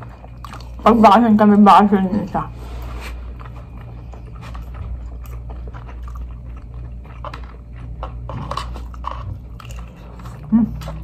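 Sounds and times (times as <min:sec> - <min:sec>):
chewing and eating: 0:00.0 - 0:11.0
steady low hum: 0:00.0 - 0:11.0.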